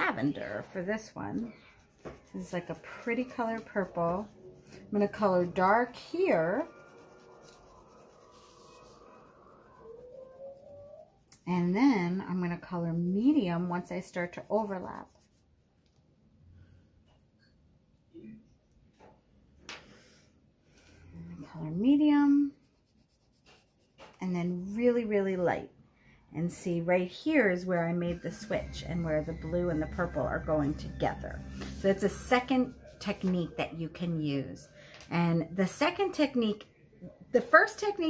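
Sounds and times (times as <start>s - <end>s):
woman speaking: 0.0s - 1.6s, 2.2s - 4.3s, 4.9s - 6.7s, 11.4s - 15.2s, 21.2s - 22.6s, 24.2s - 25.7s, 26.3s - 36.7s, 37.3s - 38.0s
crayon rubbing on paper: 0.0s - 15.4s, 21.6s - 24.2s, 29.1s - 33.8s
faint rising tone: 6.4s - 11.4s.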